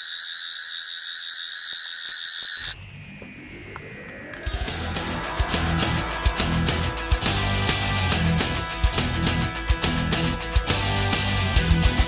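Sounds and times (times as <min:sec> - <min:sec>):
high-pitched rippling electronic tone: 0:00.0 - 0:08.8
rising whoosh: 0:02.8 - 0:10.0
heavy guitar music: 0:02.8 - 0:12.0.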